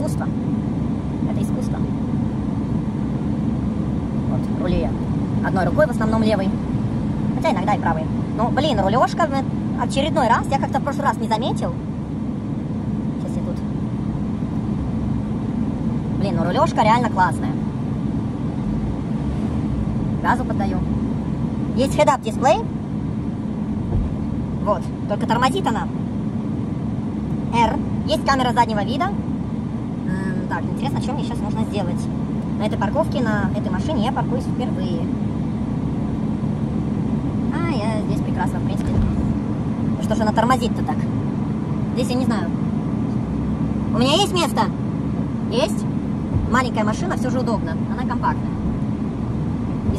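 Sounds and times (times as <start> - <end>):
car engine and road noise: 0.0 - 49.9.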